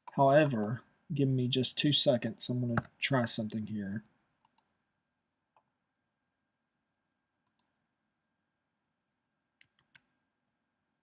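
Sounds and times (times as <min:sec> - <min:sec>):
computer mouse clicks: 0:04.4 - 0:04.7, 0:07.4 - 0:07.7, 0:09.6 - 0:10.1.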